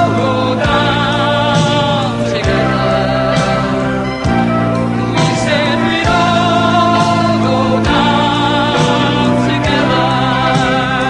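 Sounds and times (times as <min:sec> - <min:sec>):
sustained instrumental chords: 0:00.0 - 0:11.0.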